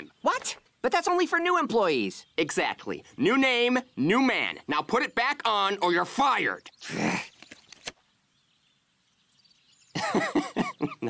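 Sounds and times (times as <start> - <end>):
faint high bird chirps: 1.3 - 11.0.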